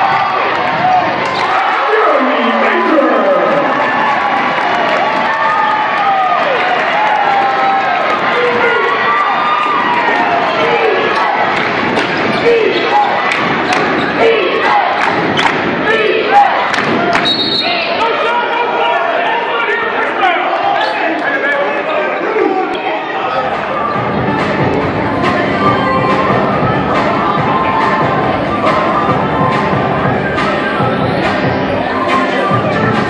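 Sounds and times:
crowd cheering: 0.0 - 33.0
players shouting: 0.0 - 33.0.

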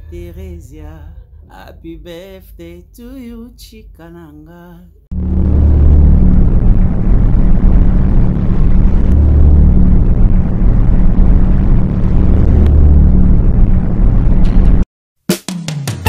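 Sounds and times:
deep cinematic rumble: 5.1 - 14.9.

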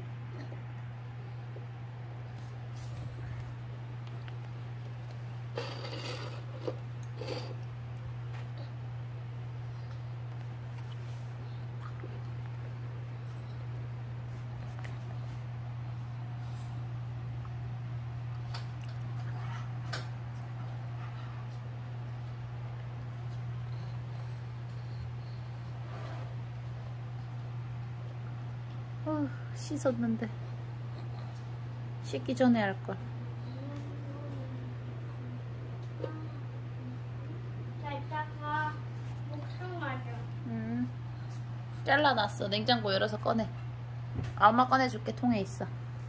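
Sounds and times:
steady low hum: 0.0 - 46.0.

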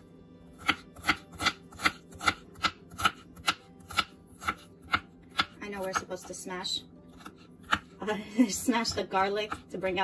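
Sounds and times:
knife chopping on wooden board: 0.6 - 6.4, 7.2 - 7.9.

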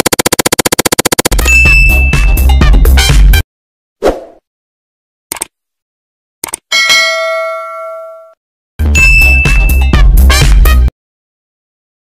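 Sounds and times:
bell ringing: 1.4 - 2.4, 6.7 - 8.4, 9.0 - 9.9.

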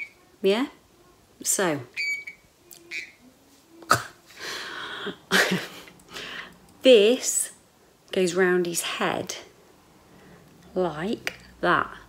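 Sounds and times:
hearing aid feedback squeal: 1.9 - 3.2.

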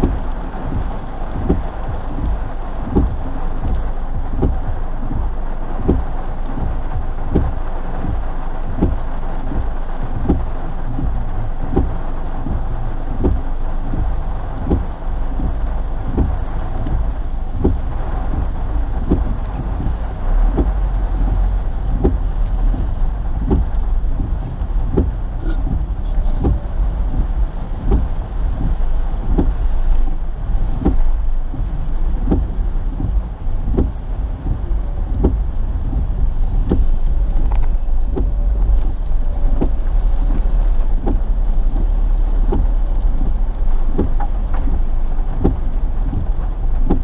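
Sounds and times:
road rumble inside moving car: 0.0 - 47.0
soft regular thump: 0.0 - 47.0.

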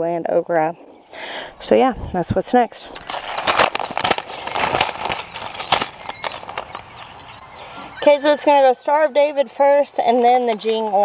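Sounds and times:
footsteps crunching on wood chips: 3.0 - 7.4.

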